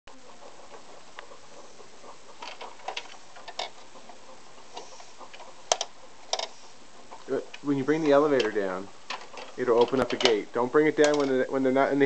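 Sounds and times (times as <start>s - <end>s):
steady hiss: 0.1s - 12.0s
plastic toys clicking and tapping: 2.4s - 3.8s, 4.8s - 6.5s, 7.5s - 10.4s, 11.0s - 11.4s.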